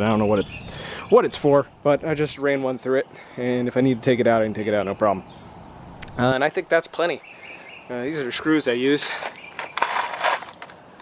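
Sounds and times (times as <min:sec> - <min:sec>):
box scraping rattle: 0:09.2 - 0:10.8
plastic box clicking on concrete: 0:09.2 - 0:10.8.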